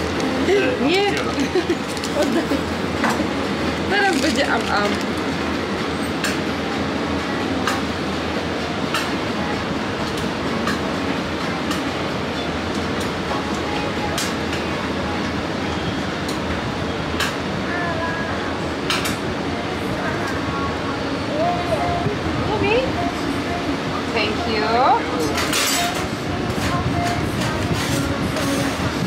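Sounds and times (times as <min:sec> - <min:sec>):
steady background rumble: 0:00.0 - 0:29.0.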